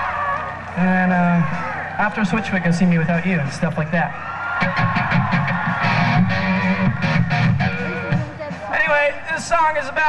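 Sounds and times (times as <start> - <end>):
electric guitar chords strummed: 4.6 - 8.8.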